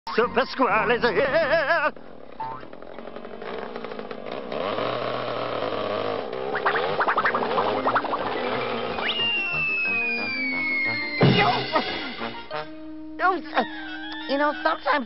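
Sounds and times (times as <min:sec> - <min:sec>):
rising and falling whistle: 0:06.5 - 0:12.5
cartoon background music: 0:06.6 - 0:15.0.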